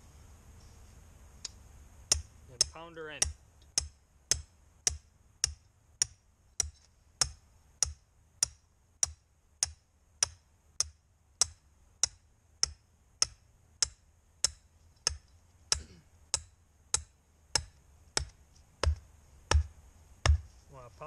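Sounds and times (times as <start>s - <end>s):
hammer striking metal stake: 2.1s - 20.5s.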